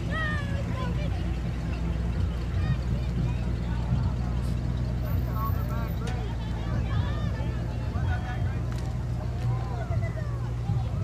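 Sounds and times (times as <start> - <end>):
indistinct voices talking: 0.0 - 11.0
low engine rumble: 0.0 - 11.0.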